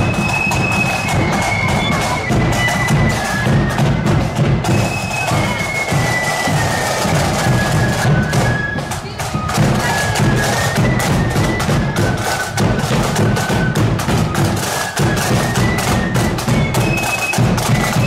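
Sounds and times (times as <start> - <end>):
flute melody: 0.0 - 18.0
side drums: 0.0 - 18.0.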